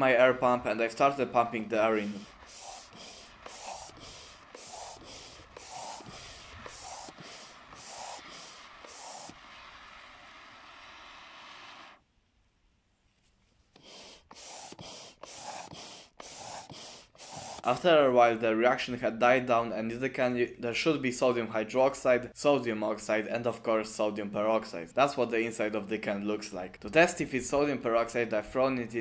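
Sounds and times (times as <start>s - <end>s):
steady air hiss: 0.0s - 12.0s, 13.7s - 18.2s
hand air pump hissing puffs: 1.7s - 12.0s, 13.8s - 17.8s.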